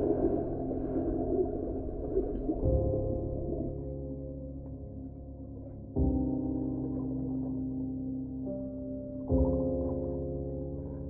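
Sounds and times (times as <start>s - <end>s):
low droning ambient music: 0.0s - 11.0s
muffled underwater splash and bubbles: 0.0s - 11.0s.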